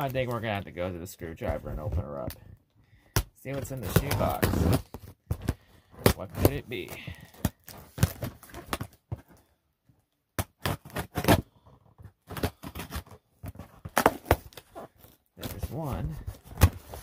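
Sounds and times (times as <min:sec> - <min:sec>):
cardboard box scraping and tearing: 0:03.6 - 0:05.2, 0:12.2 - 0:17.0.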